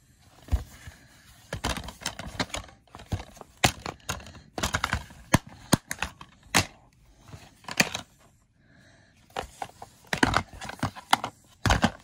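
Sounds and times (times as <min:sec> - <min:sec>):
plastic cases clicking: 0:00.5 - 0:08.2, 0:09.3 - 0:12.0.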